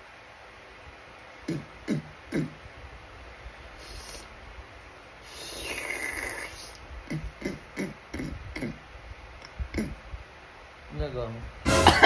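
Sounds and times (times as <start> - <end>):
raspy snore-like hiss: 3.8 - 4.3, 5.2 - 8.8.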